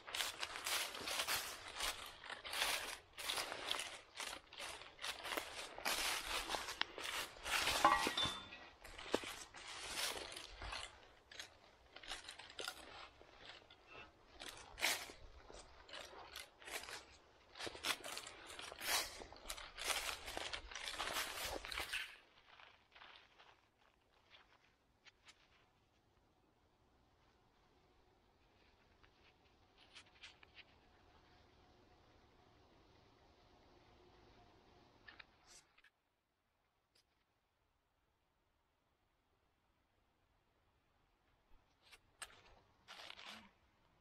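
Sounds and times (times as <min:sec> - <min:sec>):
footsteps on dry leaves: 0:00.0 - 0:25.6, 0:42.2 - 0:43.5.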